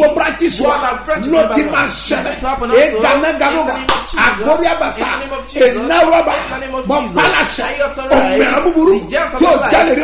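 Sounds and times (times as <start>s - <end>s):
man preaching loudly: 0.0s - 10.0s
sharp slap: 3.9s - 4.2s.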